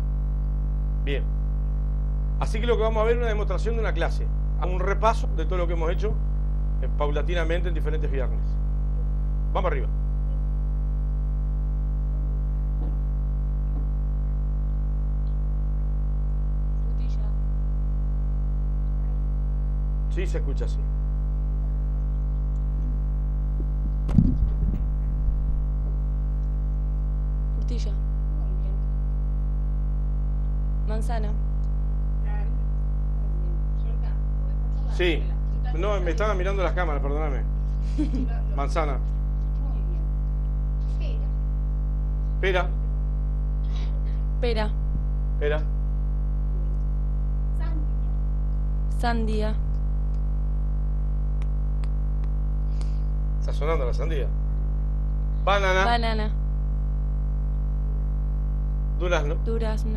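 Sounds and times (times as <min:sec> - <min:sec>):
electrical mains hum: 0:00.0 - 0:59.9
microphone handling thumps: 0:21.8 - 0:26.4.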